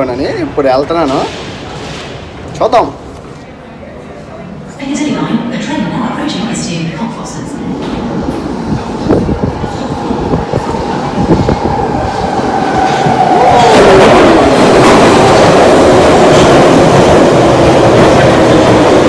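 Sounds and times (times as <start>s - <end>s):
train rumble and rail clatter: 0.0s - 19.0s
train rushing past platform: 0.0s - 19.0s.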